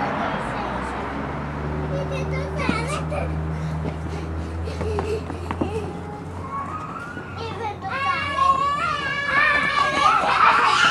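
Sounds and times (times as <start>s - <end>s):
child's wordless call: 5.8s - 10.9s.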